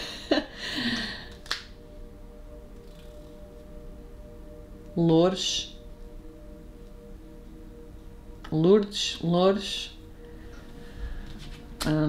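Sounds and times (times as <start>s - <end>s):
finger snap: 1.0s - 1.8s.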